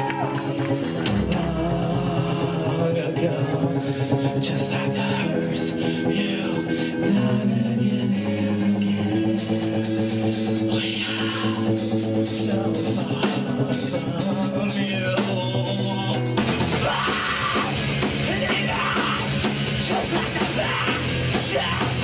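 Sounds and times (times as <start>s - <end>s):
live rock band playing: 0.0s - 8.0s, 8.6s - 22.0s
person singing into microphone: 1.0s - 10.0s, 10.6s - 22.0s.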